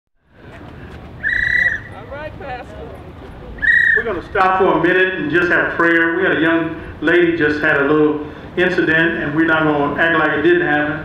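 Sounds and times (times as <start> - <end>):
outdoor background noise: 0.2 - 11.0
shrill whistle-like tone: 1.2 - 1.9, 3.6 - 4.2.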